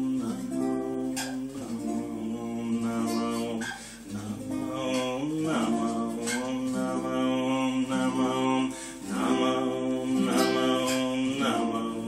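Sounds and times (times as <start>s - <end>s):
voice chanting a devotional song: 0.0s - 12.0s.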